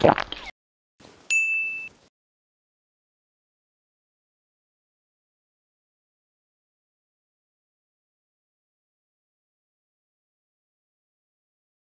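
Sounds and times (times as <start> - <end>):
bright ding: 1.3 - 2.0.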